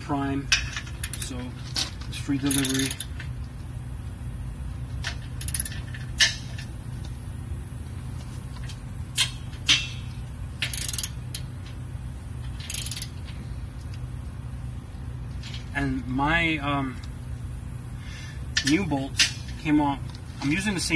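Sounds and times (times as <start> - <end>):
steady low hum: 0.0 - 20.9
sharp metallic clicks: 0.4 - 3.5, 5.0 - 7.2, 8.6 - 11.8, 12.4 - 14.1
socket ratchet clicking: 2.5 - 3.2, 5.1 - 6.4, 10.6 - 11.5, 12.6 - 13.2.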